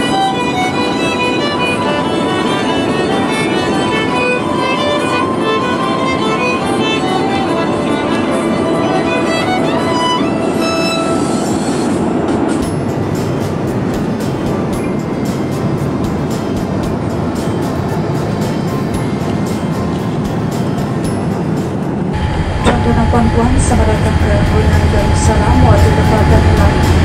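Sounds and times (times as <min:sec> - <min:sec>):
airliner cabin noise: 0:00.0 - 0:27.0
low rumble with hum: 0:22.1 - 0:27.0.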